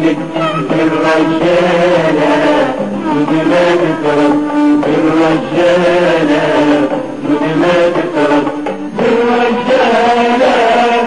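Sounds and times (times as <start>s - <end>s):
voices singing chant-like: 0.0s - 11.0s.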